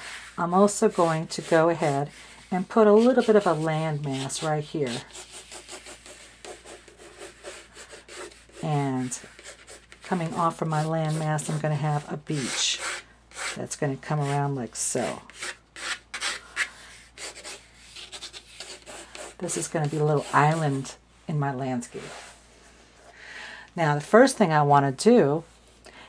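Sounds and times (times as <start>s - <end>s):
pencil scratching on paper: 0.0s - 13.6s, 15.3s - 20.8s.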